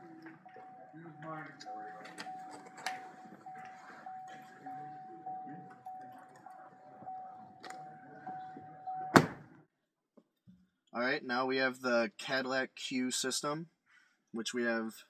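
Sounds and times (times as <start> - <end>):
car door warning chime: 0.7 - 9.2
car door slamming: 9.1 - 9.5.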